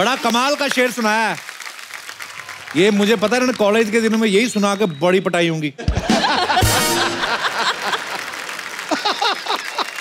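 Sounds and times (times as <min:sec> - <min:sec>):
hearty laughter: 0:05.8 - 0:08.3, 0:08.9 - 0:10.0.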